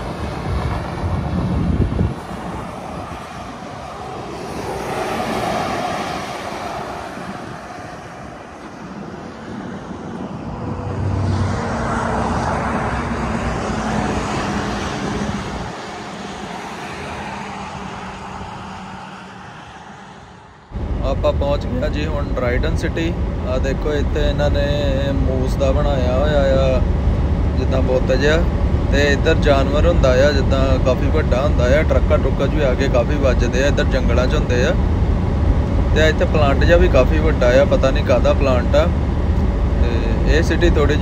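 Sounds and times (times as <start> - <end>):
highway traffic passing: 0.0 - 41.0.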